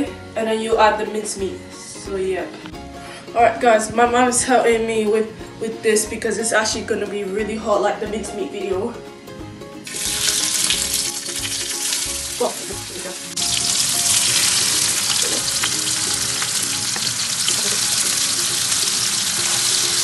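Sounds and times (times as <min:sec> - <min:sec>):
meat sizzling in a frying pan: 0:09.8 - 0:20.0.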